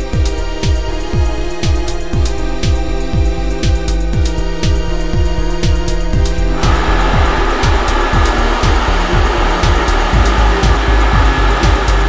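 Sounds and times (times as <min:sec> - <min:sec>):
electronic music with steady beat: 0:00.0 - 0:12.0
machine rush of air: 0:01.0 - 0:12.0.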